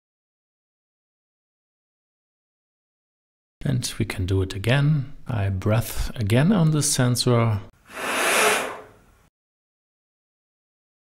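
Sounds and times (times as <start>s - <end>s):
person exhaling breath: 7.9s - 9.0s.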